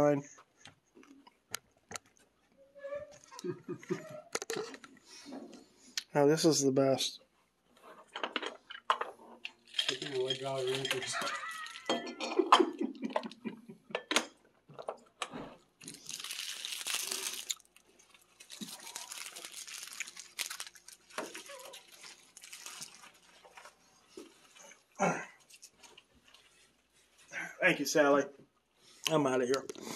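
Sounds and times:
candy clattering in a jar: 0:09.7 - 0:12.2, 0:15.8 - 0:23.2
rustling: 0:15.8 - 0:27.3.

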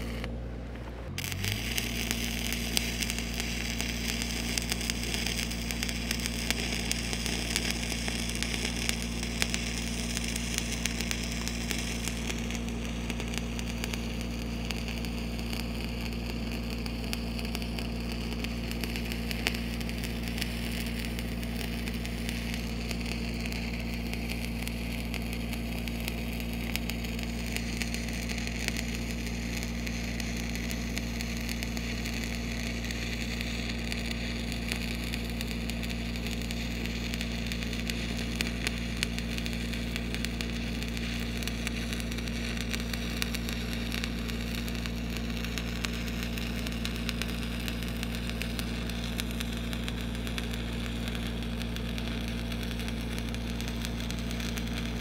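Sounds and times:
low hum: 0:00.0 - 0:55.0
welding arc crackling: 0:00.0 - 0:55.0.

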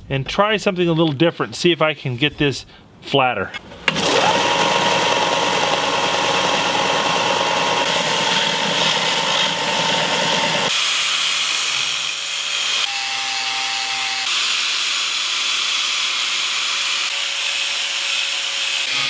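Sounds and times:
angle grinder grinding steel: 0:03.9 - 0:19.0
belt sander motor running: 0:03.9 - 0:19.0.

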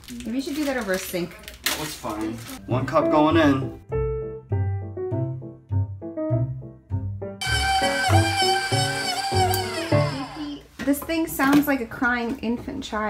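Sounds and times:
stand mixer motor whining: 0:07.4 - 0:10.6.

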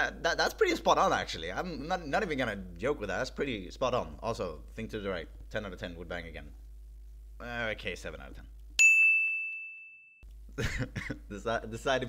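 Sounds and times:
bell-like ding: 0:08.8 - 0:10.2.

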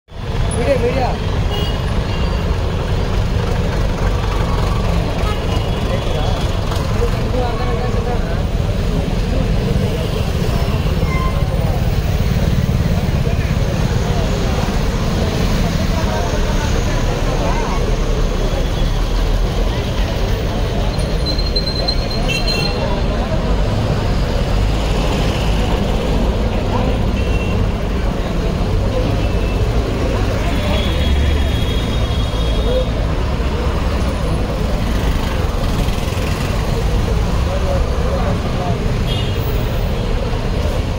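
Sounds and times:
street traffic engines: 0:00.1 - 0:40.9
crowd chatter: 0:00.2 - 0:40.9.

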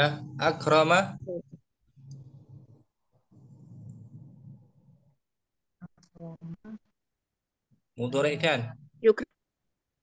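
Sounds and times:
man speaking: 0:00.0 - 0:01.2, 0:08.0 - 0:08.8
muffled low sound: 0:00.0 - 0:05.2.

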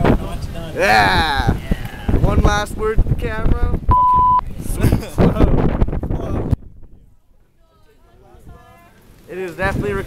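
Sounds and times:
censor bleep: 0:03.9 - 0:04.4.

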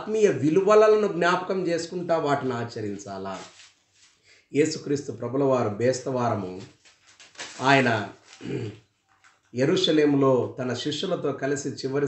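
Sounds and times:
man preaching: 0:00.0 - 0:03.5, 0:04.5 - 0:06.7, 0:07.6 - 0:08.8, 0:09.6 - 0:12.0.

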